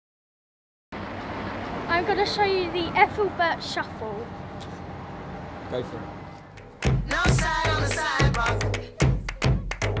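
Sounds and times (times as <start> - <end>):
traffic hum: 0.9 - 9.8
girl speaking: 1.9 - 4.3.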